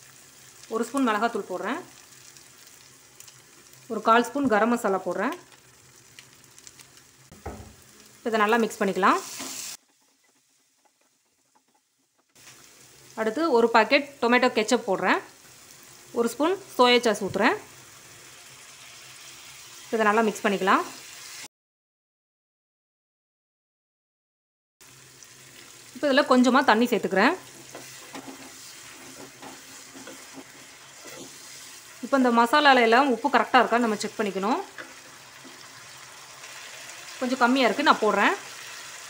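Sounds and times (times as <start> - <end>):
food sizzling faintly in a pan: 0.0 - 21.5, 24.8 - 39.0.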